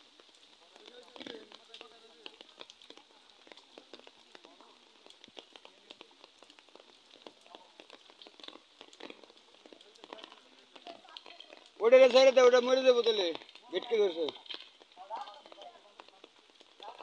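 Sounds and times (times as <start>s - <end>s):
light rain pattering: 0.0s - 17.0s.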